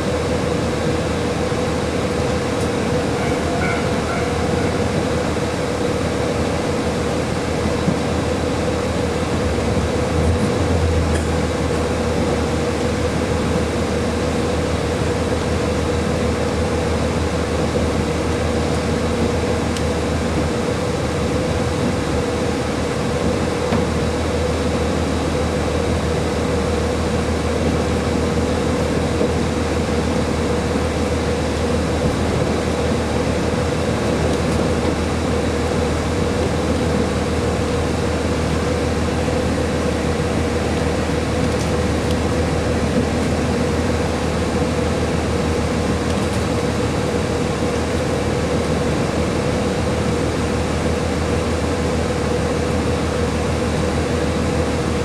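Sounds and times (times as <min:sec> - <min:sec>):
railcar engine and wheels running: 0:00.0 - 0:55.0.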